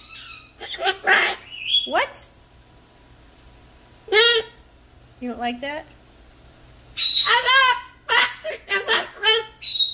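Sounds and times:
cockatoo speaking: 0.6 - 2.3, 4.1 - 4.6, 7.2 - 9.6.

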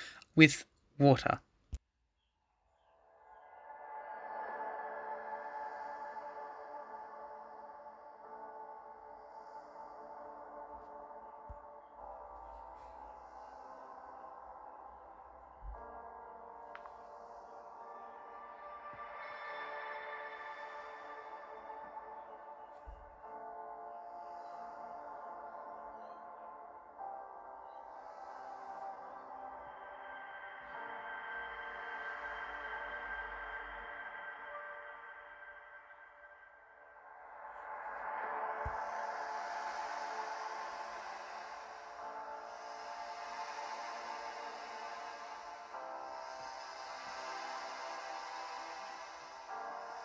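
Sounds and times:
background music of sustained tones: 0.0 - 1.4, 2.2 - 50.0.

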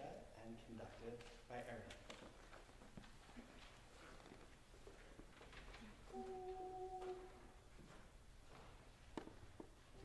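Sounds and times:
steady held pitch note: 6.1 - 7.5.

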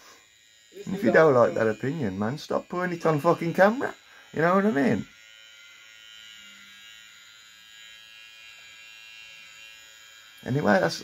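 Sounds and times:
electric hair clippers buzzing: 0.0 - 11.0.

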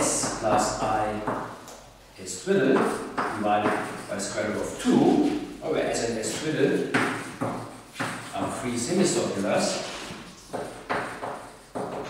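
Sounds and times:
man speaking: 0.0 - 1.4, 2.2 - 7.0, 8.3 - 10.0
chalk scraping on blackboard: 2.8 - 12.0.

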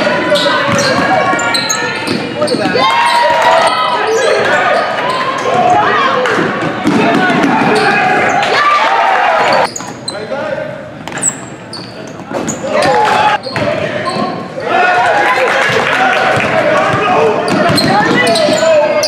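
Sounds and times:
sneakers squeaking on court: 0.0 - 6.0, 9.4 - 10.3, 11.0 - 14.5, 16.9 - 19.0
crowd and players shouting: 0.0 - 9.7, 12.6 - 19.0
basketball bouncing: 0.6 - 1.4, 16.3 - 18.6.

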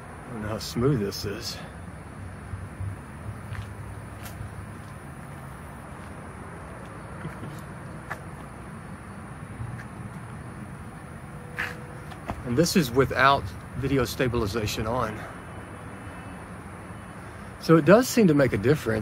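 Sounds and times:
low outdoor rumble: 0.0 - 15.9.

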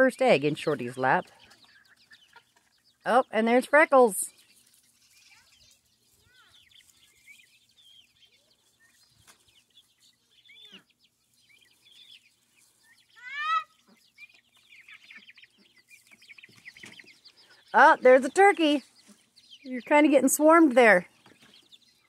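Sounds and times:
young chickens chirping: 0.0 - 22.0.

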